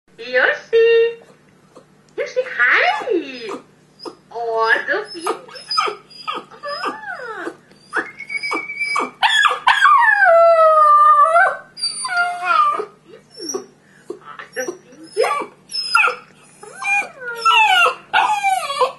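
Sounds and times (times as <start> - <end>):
dog howling and whining: 5.0 - 18.9.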